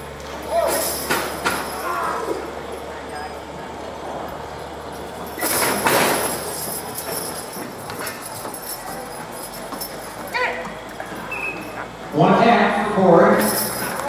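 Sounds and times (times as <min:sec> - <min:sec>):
harness gear clinking: 0:00.4 - 0:03.3, 0:04.2 - 0:12.0, 0:13.3 - 0:14.0
hooves clip-clopping: 0:02.6 - 0:14.0.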